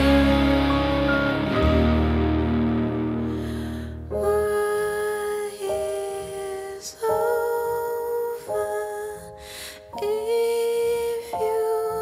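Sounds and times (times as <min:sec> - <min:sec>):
breath: 0:03.3 - 0:04.1, 0:09.4 - 0:09.9.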